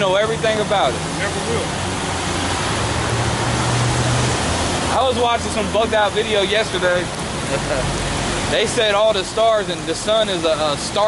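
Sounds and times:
rain on umbrellas and pavement: 0.0s - 11.0s.

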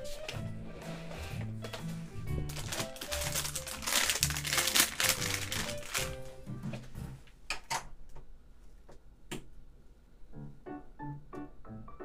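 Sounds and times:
background music: 0.0s - 7.3s, 10.4s - 12.0s
plastic packaging crinkling: 1.7s - 6.4s.

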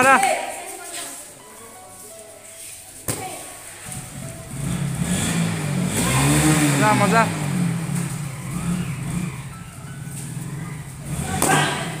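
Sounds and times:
motor vehicle engine running: 3.8s - 12.0s.

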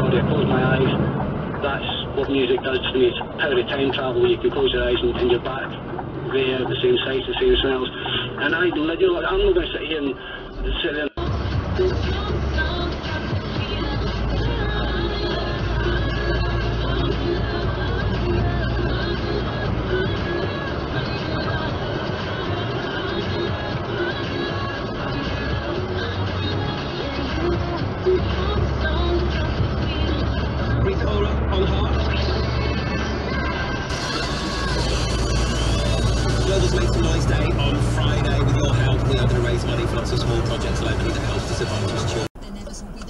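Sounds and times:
music on a car radio: 0.0s - 43.0s
vehicle rumbling on road: 0.0s - 43.0s.

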